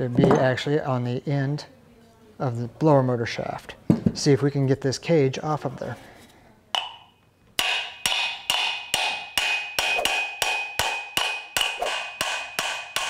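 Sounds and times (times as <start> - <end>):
hammer striking metal shaft: 6.8 - 13.0
high metallic ringing: 6.8 - 13.0.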